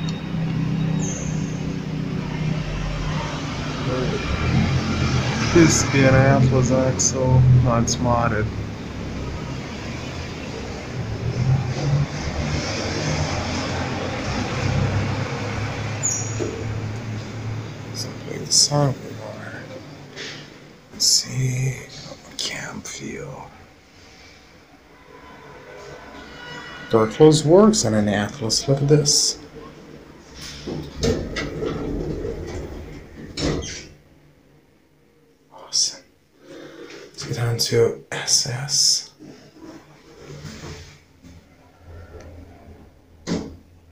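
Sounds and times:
elevator rumble with low hum: 30.6 - 33.6.

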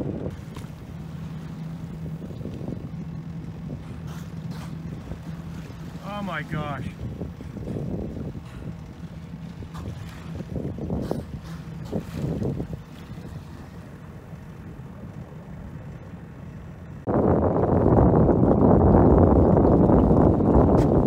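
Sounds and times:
boat engine humming: 0.0 - 21.0
water noise: 0.0 - 21.0
wind: 0.0 - 21.0.

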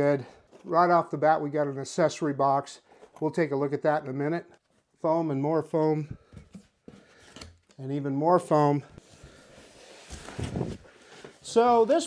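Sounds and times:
foam and cardboard rustling: 9.0 - 12.0.

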